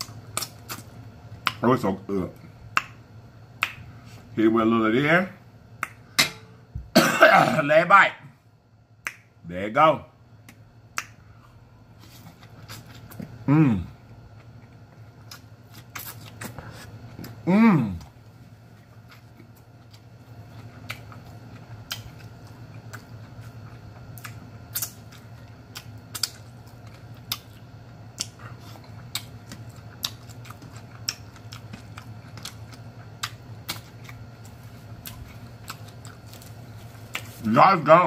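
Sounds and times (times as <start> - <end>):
steady low hum: 0.0 - 38.0
person chewing with lip smacks: 14.4 - 17.4, 18.7 - 37.4.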